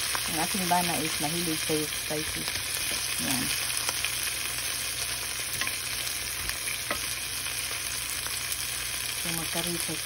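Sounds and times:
vegetables sizzling in hot oil: 0.0 - 10.0.

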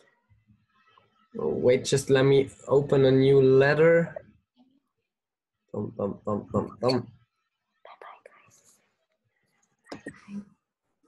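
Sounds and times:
faint low voices over a video call: 0.0 - 10.7.

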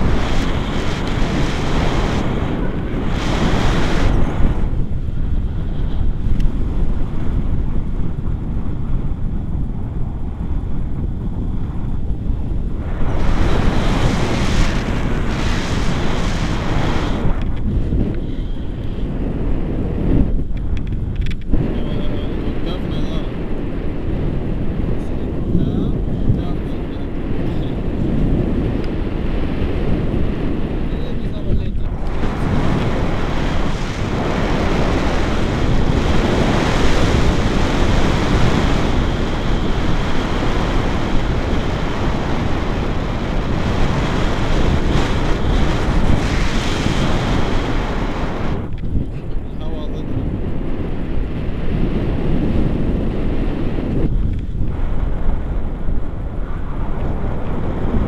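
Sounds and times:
wind buffeting a microphone: 0.0 - 58.0.

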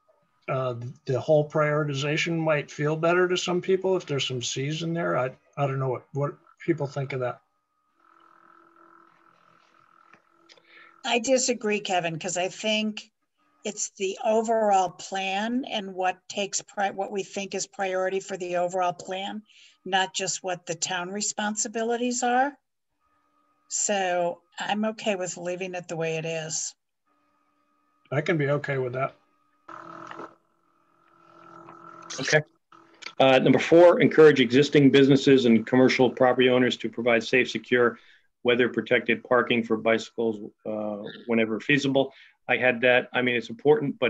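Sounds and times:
held tones: 0.0 - 22.4, 23.0 - 36.8
faint steady hum: 0.0 - 44.0.

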